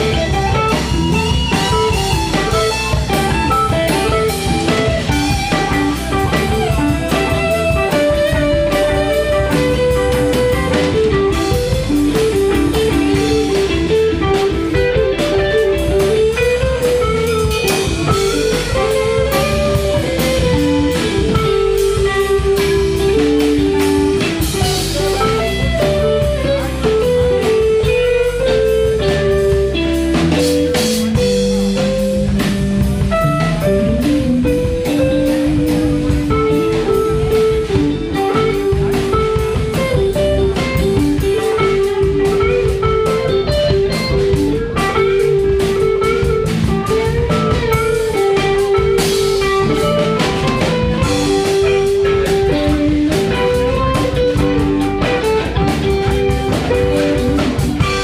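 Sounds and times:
live blues band playing: 0.0s - 58.0s.

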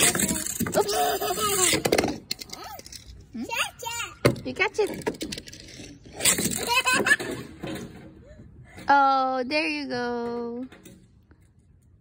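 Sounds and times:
toddler laughing: 0.7s - 1.9s, 6.2s - 7.6s.

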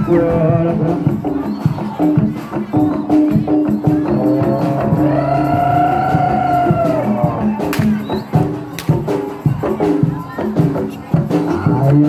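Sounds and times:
repeating percussion pattern: 0.0s - 12.0s.

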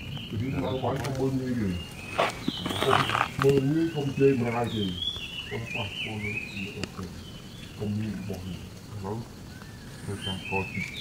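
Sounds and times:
people talking: 0.3s - 7.2s, 7.8s - 9.3s, 10.0s - 11.0s.

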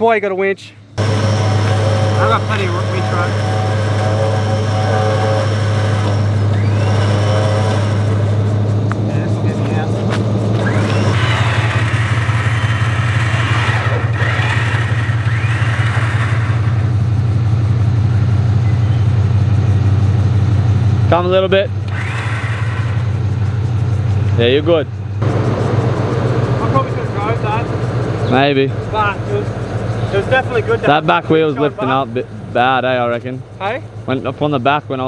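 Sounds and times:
engine and winch running: 0.9s - 35.0s.

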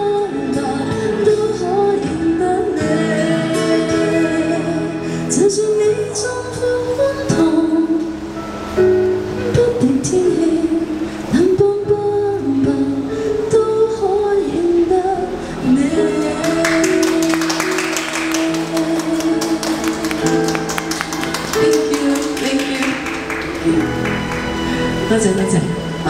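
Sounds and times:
woman singing over backing track: 0.0s - 26.0s.

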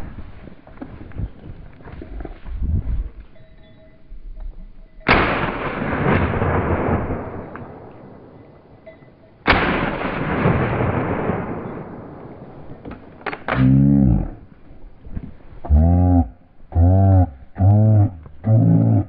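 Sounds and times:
shotgun shots: 5.1s - 8.4s, 9.5s - 13.8s
long rolling echo: 5.1s - 13.2s.

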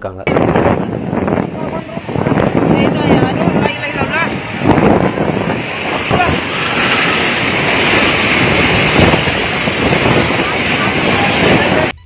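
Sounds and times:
wind buffeting microphone: 0.0s - 12.0s
floodwater rushing and churning: 0.4s - 11.9s.

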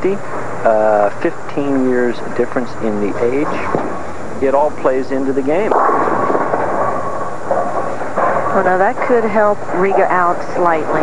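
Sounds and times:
rattling rumble: 2.0s - 11.0s
bowling pins crashing: 3.4s - 11.0s.

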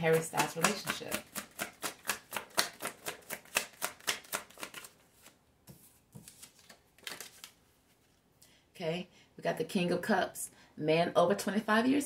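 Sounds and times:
cards being shuffled: 0.1s - 8.1s.

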